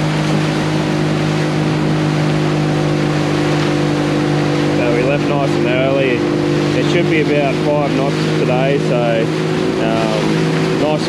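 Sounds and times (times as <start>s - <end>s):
outboard motor droning: 0.0s - 11.0s
water rushing: 0.0s - 11.0s
wind: 0.0s - 11.0s.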